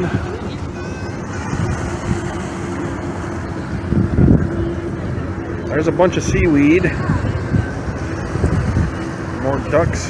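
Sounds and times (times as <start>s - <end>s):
steady low drone: 0.0s - 10.0s
wind buffeting microphone: 0.0s - 10.0s.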